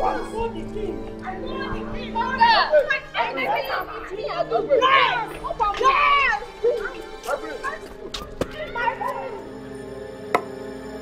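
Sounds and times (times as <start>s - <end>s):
film background music: 0.0s - 11.0s
people shouting excitedly: 1.3s - 9.5s.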